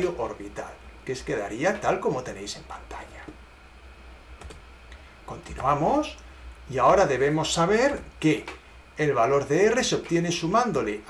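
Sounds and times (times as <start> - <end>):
low steady hum: 0.0 - 11.0
computer clicks: 4.4 - 4.6.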